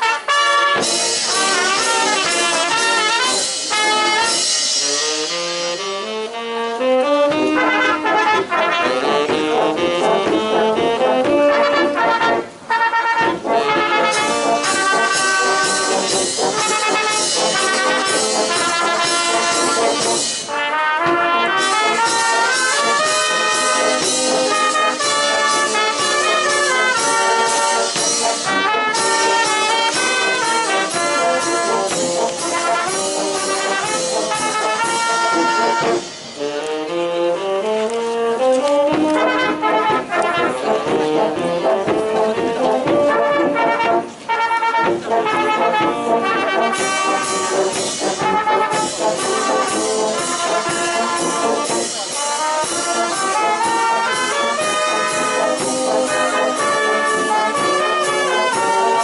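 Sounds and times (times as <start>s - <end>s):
brass band playing a march: 0.0s - 59.0s.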